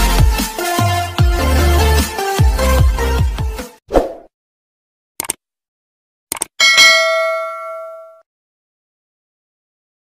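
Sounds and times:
bell chime ringing: 0:06.6 - 0:08.2.

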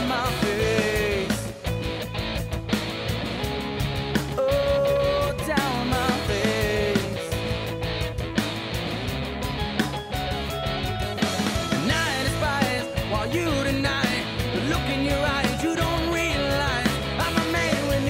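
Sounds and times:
electric guitar: 0:00.0 - 0:18.0
steady drum beat: 0:00.0 - 0:18.0.

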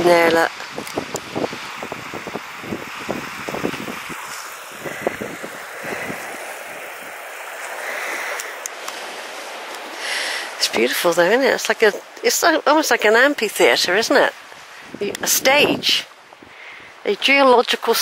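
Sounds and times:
wind buffeting microphone: 0:00.0 - 0:17.1
sea surf washing on shore: 0:00.0 - 0:18.0.

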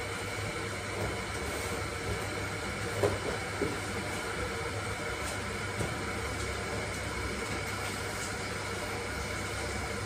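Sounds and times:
electric kettle heating water: 0:00.0 - 0:10.0.

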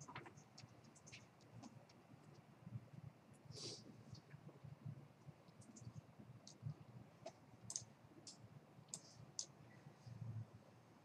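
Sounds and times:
computer mouse clicks: 0:05.5 - 0:09.6.

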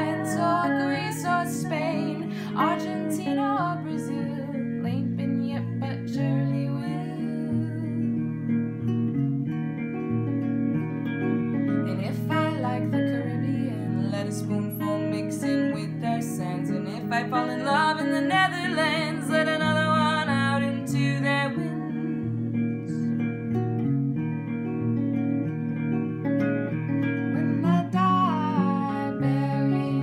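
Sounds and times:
two guitars picking and strumming: 0:00.0 - 0:30.0.

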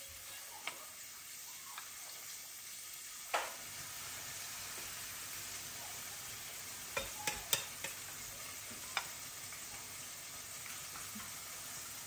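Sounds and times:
oil sizzling in a frying pan: 0:00.0 - 0:12.0.

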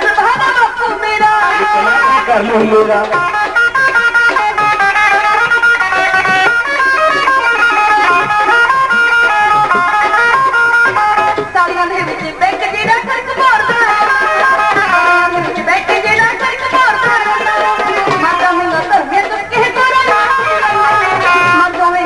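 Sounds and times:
plucked string melody: 0:00.0 - 0:22.0.

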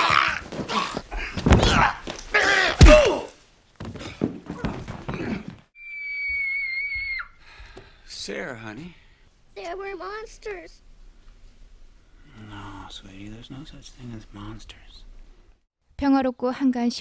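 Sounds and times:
man choking and groaning: 0:00.0 - 0:03.3.

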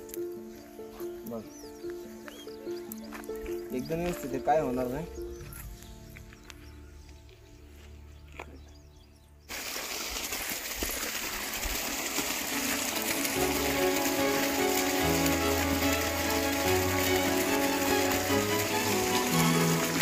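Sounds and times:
stream running over rocks: 0:09.5 - 0:20.0.

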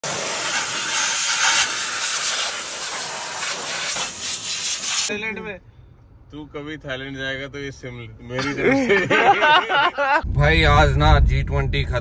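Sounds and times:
compressed air hissing from hose: 0:00.0 - 0:05.1.

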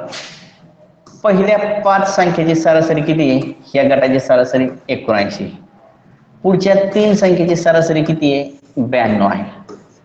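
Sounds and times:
short hiss: 0:00.1 - 0:00.5
man speaking: 0:01.1 - 0:09.8.

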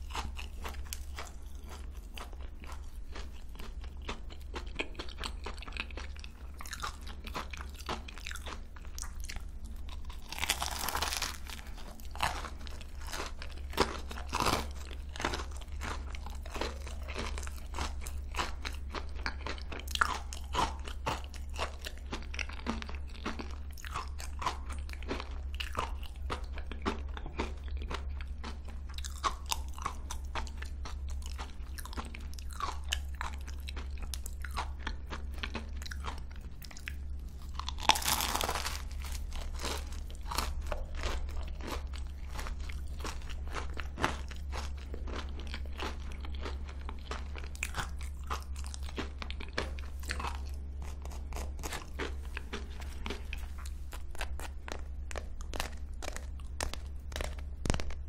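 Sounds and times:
pastry crust crunching: 0:00.0 - 0:58.0
steady low hum: 0:00.0 - 0:58.0.

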